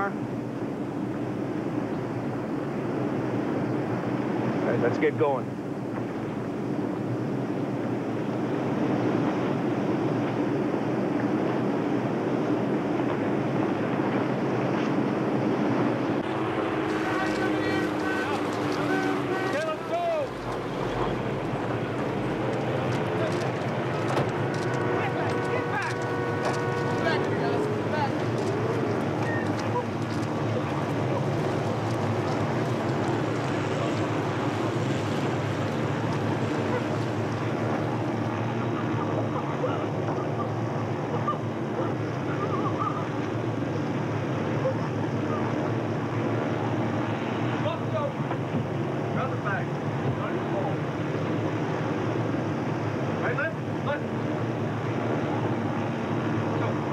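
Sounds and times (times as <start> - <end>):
steady rushing noise: 0.0 - 56.9
muffled voices: 16.4 - 32.5, 36.5 - 43.4.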